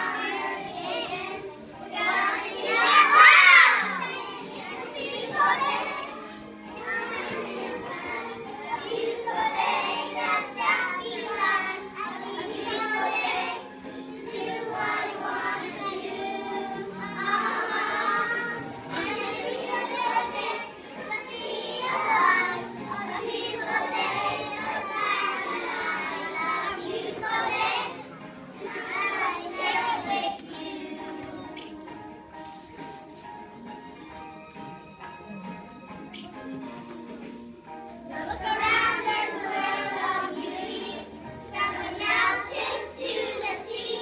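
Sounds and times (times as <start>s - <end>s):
children singing together: 0.0s - 32.2s, 38.1s - 44.0s
faint backing track: 0.0s - 44.0s.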